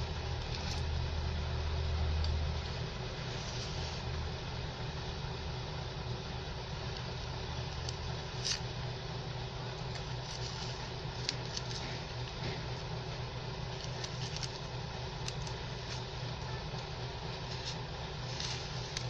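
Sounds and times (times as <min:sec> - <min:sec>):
background hum: 0:00.0 - 0:19.0
knife scraping plastic plant pot: 0:17.5 - 0:19.0.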